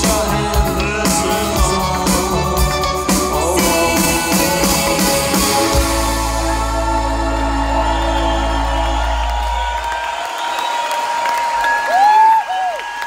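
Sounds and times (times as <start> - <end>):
audience whooping and cheering: 5.2 - 13.0
deep sustained bass note: 5.9 - 9.9.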